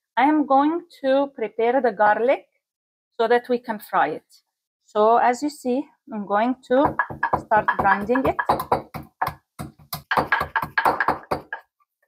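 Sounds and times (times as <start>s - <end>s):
wooden pestle pounding in mortar: 6.8s - 11.6s.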